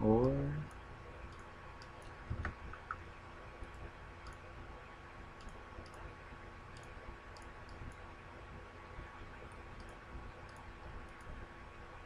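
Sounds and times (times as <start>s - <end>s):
computer mouse clicks: 3.6s - 4.5s, 5.4s - 6.1s, 6.7s - 8.0s, 9.3s - 11.4s.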